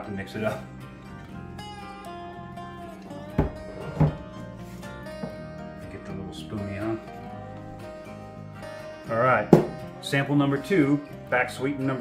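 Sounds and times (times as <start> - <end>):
acoustic guitar music: 0.0 - 12.0
glass knocking on wooden table: 3.4 - 4.2, 5.2 - 5.4, 9.5 - 9.8.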